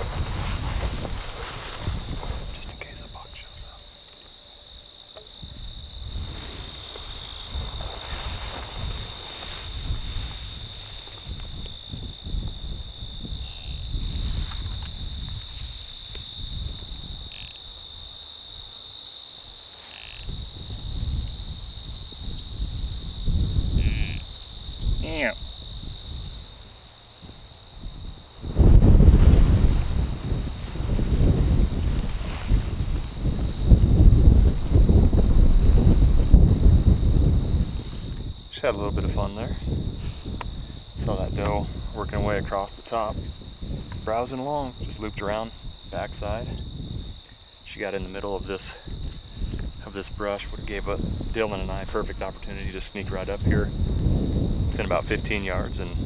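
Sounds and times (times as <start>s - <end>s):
wind rumbling on microphone: 0.0s - 4.0s, 4.6s - 18.8s, 19.5s - 56.0s
crickets trilling: 0.0s - 56.0s
deer bleat: 19.8s - 20.2s, 23.7s - 24.2s.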